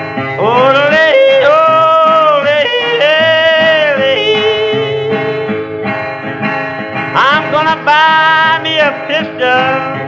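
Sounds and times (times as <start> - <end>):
strummed acoustic guitar: 0.0 - 10.0
man yodeling: 0.4 - 5.2, 7.2 - 10.0.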